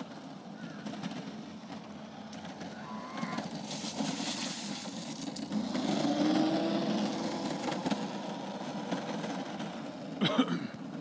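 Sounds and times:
go-kart motor driving past: 0.0s - 11.0s.

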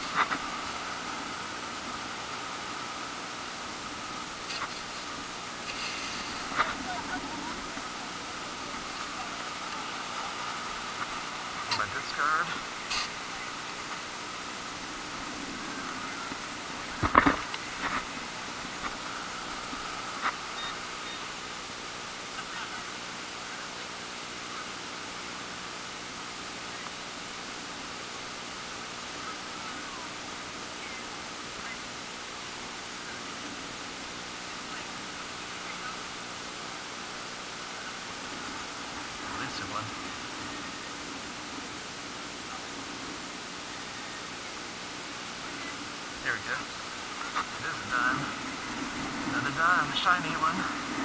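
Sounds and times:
outdoor hiss: 0.0s - 51.0s.

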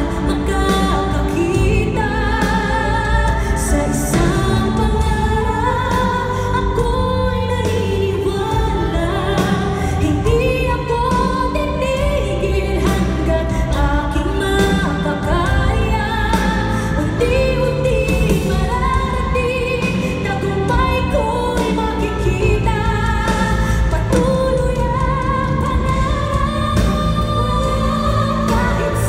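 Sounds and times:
band with keyboards and bass: 0.0s - 29.0s
woman singing pop song: 0.0s - 29.0s.

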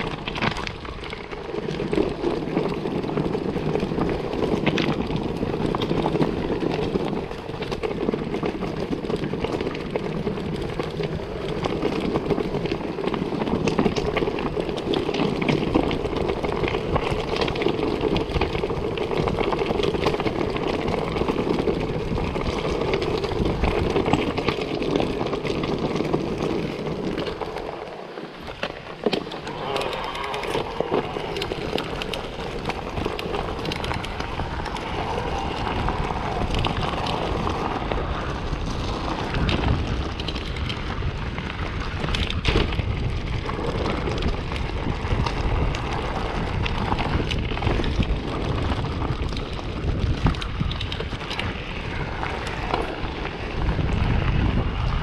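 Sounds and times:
bike knocking and rattling: 0.0s - 55.0s
bike tyres crunching over stones: 0.0s - 55.0s
wind on microphone: 0.0s - 55.0s.

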